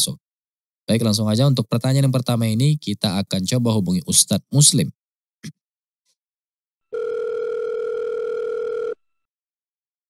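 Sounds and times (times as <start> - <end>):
telephone ringback tone: 6.9 - 9.3.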